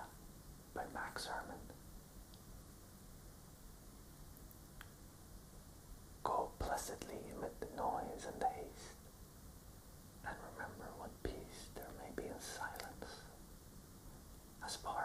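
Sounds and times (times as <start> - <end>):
man whispering: 0.0 - 1.8, 6.2 - 9.0, 10.2 - 13.4, 14.6 - 15.0.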